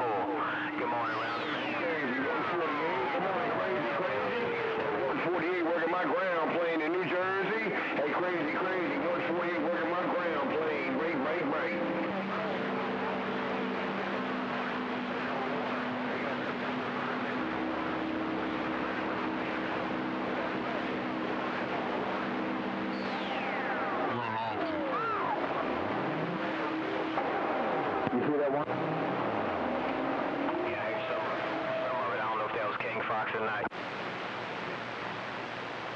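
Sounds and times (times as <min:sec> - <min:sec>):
radio static: 0:00.0 - 0:12.7, 0:30.5 - 0:34.8
garbled distant voices: 0:00.0 - 0:33.7.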